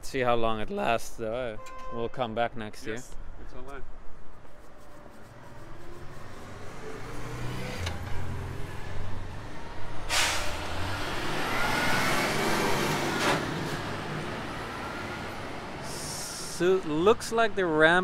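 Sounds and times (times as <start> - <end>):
vehicle engine rumble: 5.1 - 17.0
loud hiss: 10.1 - 10.6.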